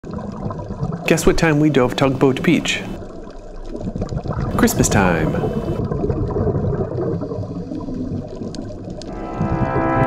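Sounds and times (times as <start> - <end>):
underwater rumble: 0.0 - 10.0
music: 9.1 - 10.0.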